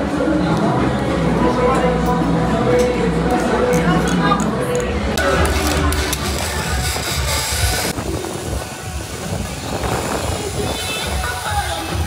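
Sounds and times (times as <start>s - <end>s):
wind noise on microphone: 5.0s - 12.0s.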